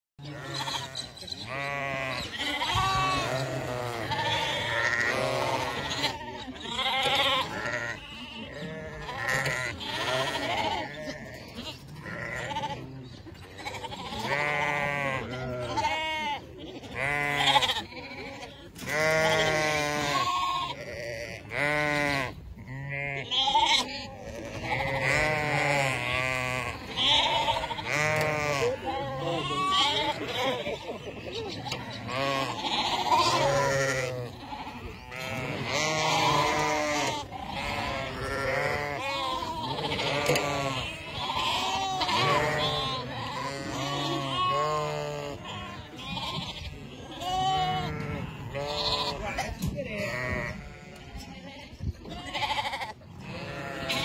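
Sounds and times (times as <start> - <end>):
sheep bleating: 0.2 - 54.0.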